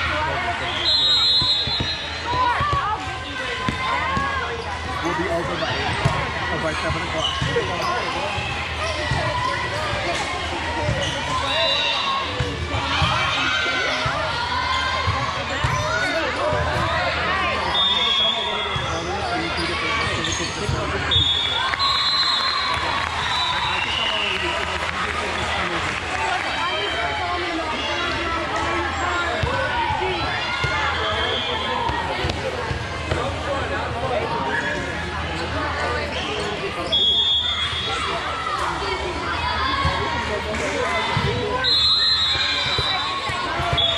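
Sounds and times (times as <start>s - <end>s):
voices calling and shouting: 0.0s - 43.9s
volleyballs hit and bouncing: 1.5s - 11.3s, 31.9s - 33.5s, 42.5s - 43.9s.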